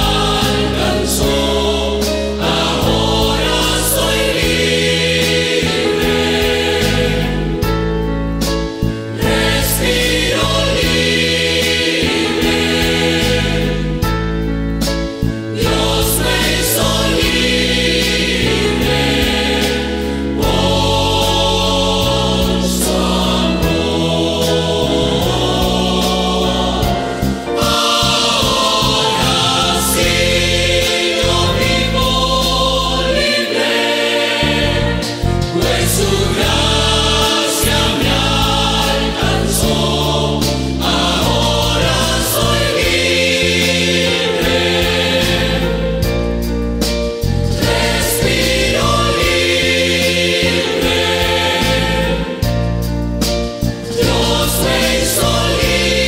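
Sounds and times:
church choir singing a hymn: 0.0 - 46.6, 47.2 - 56.0
instrumental accompaniment: 0.0 - 56.0.

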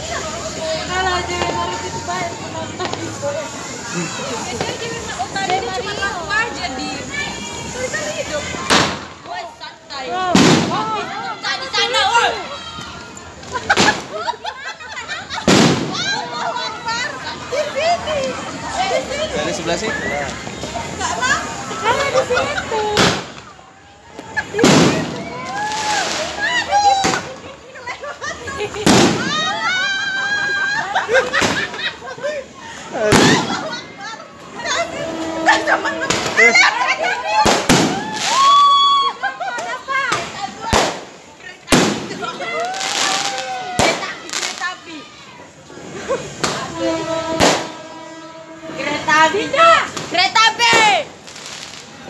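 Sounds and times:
fireworks bangs: 0.2 - 32.2, 32.9 - 45.0, 45.8 - 52.0
firecracker bang: 8.5 - 9.5, 10.1 - 12.0, 13.6 - 14.5, 15.2 - 16.6, 22.9 - 23.6, 24.2 - 27.5, 28.7 - 29.7, 31.2 - 32.0, 33.0 - 34.0, 35.5 - 38.6, 39.6 - 44.8, 46.4 - 48.8
steady horn-like tone: 34.8 - 36.1, 46.6 - 49.6.

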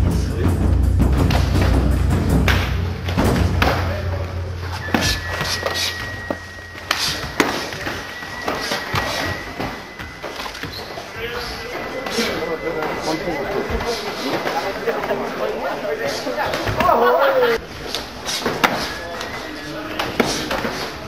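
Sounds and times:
music with heavy bass: 0.0 - 4.7
voices: 2.6 - 21.0.

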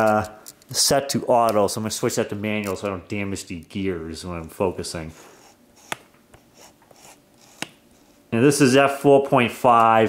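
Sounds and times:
faint rubbing: 5.0 - 8.4.

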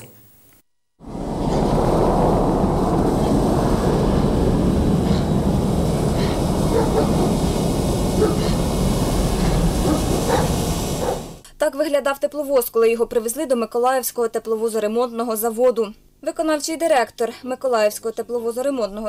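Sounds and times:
diesel locomotive engine running: 1.0 - 11.4.

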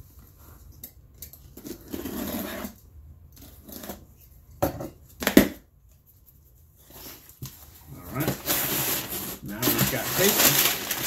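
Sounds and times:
cardboard scraping rustle: 6.8 - 11.0.

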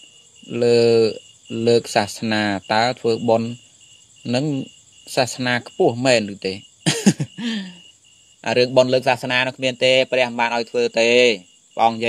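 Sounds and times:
man preaching: 0.4 - 3.6, 4.3 - 7.8, 8.4 - 12.0.

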